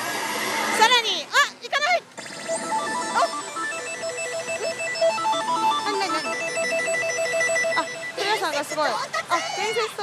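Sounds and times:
electronic beeping melody: 2.2 - 8.9.

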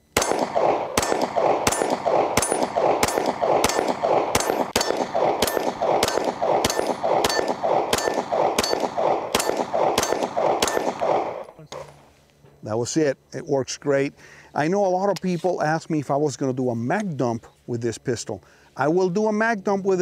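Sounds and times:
pistol shots echoing: 0.0 - 11.4.

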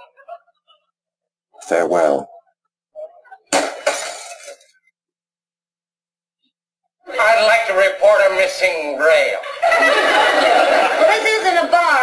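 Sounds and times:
glass shattering: 3.5 - 4.8.

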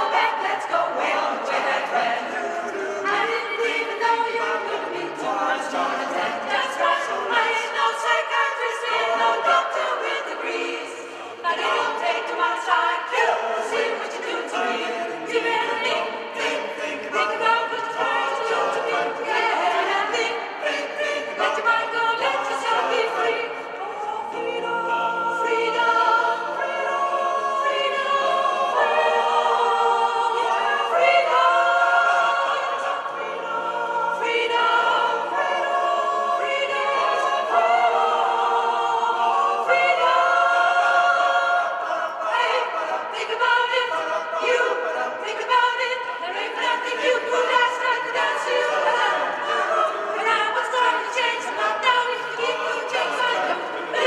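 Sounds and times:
mixed choir singing a cappella: 0.0 - 54.0.

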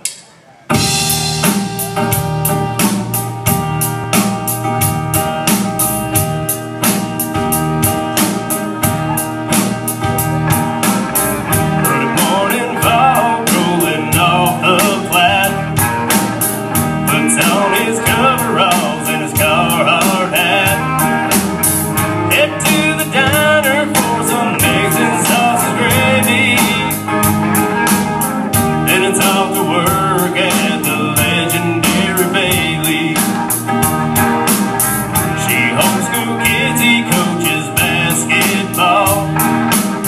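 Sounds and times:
acoustic guitar: 0.0 - 40.0
drum kit beat: 0.0 - 40.0
electric guitars: 0.0 - 40.0
man singing: 11.5 - 16.4, 17.0 - 21.4, 22.2 - 27.3, 28.8 - 33.8, 35.2 - 40.0.

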